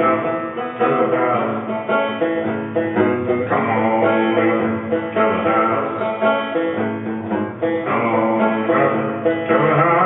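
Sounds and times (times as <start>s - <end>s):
banjo-guitar strumming chords: 0.0s - 10.0s.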